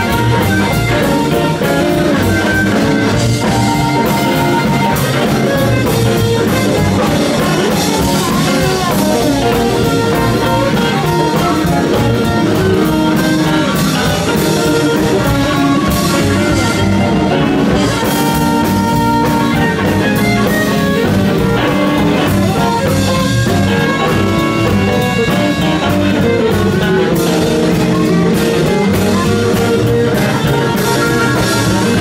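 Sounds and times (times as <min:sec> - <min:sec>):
drum kit steady beat: 0:00.0 - 0:32.0
electric guitar: 0:00.0 - 0:32.0
harmonica: 0:00.0 - 0:32.0
upright double bass: 0:00.0 - 0:32.0.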